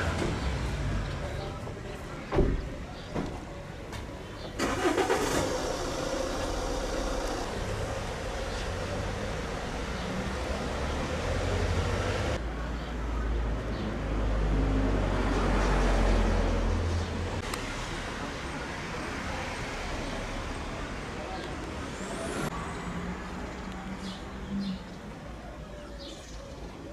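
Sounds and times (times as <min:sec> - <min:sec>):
car engine rumble: 0:00.0 - 0:12.4.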